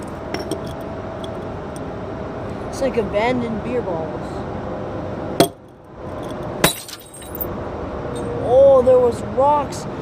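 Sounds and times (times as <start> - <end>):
small glass clinks: 5.4 - 7.5
glass bottle breaking: 6.6 - 7.5.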